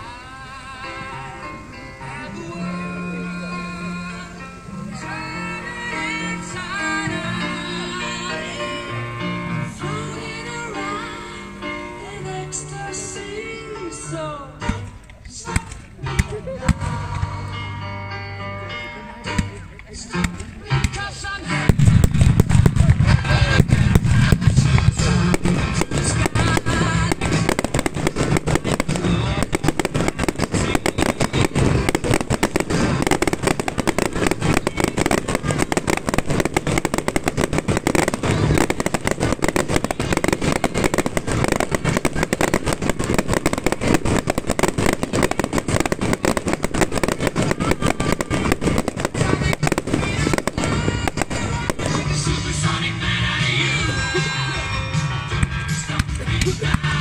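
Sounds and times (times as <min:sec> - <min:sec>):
fireworks bangs and crackles: 0:00.0 - 0:17.7, 0:18.7 - 0:57.0
music soundtrack: 0:00.0 - 0:57.0.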